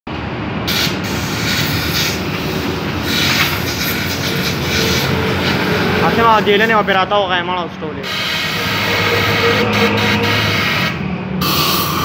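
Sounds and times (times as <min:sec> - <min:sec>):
air hissing from hose nozzle: 0:00.7 - 0:05.7, 0:08.0 - 0:12.0
mechanical running: 0:08.0 - 0:12.0.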